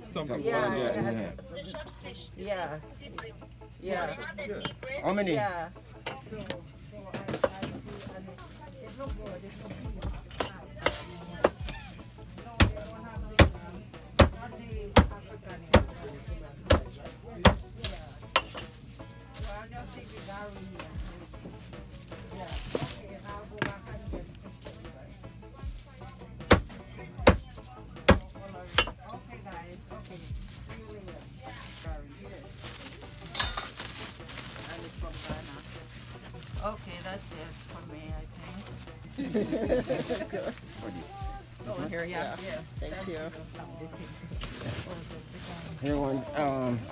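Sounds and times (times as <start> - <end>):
cleaver chopping on wooden block: 13.4 - 13.6, 14.2 - 14.4, 26.5 - 27.4.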